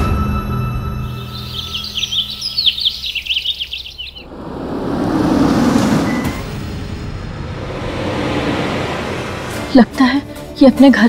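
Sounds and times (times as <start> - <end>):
small birds chirping: 1.0 - 4.3
car driving: 1.0 - 11.0.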